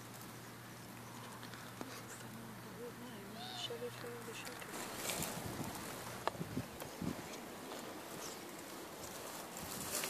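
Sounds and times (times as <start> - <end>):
dry grass rustling: 3.2 - 10.0
wind on microphone: 4.8 - 8.3, 9.4 - 10.0.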